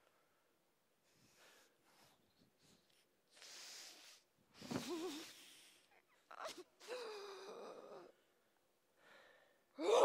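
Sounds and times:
person moaning: 9.8 - 10.0.

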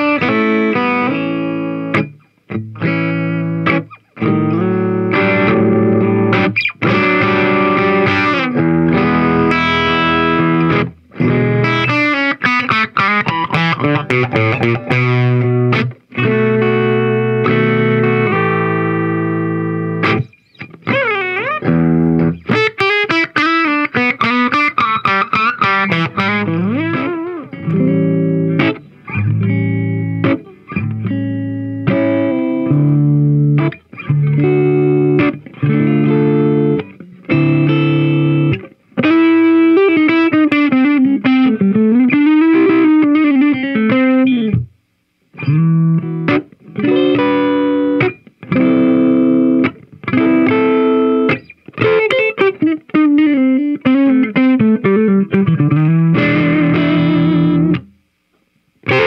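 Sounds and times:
overdriven electric guitar: 0.0 - 59.0.

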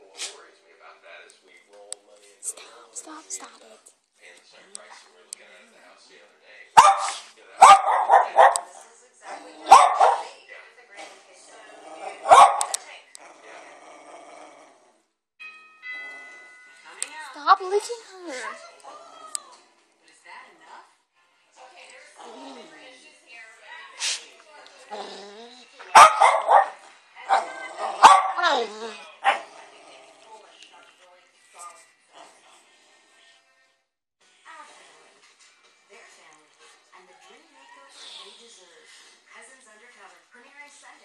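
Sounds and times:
dog play barks: 6.8 - 10.4, 11.9 - 13.6, 25.8 - 29.7
dogs playing roughly: 6.8 - 14.6, 21.8 - 23.0, 23.6 - 32.9.

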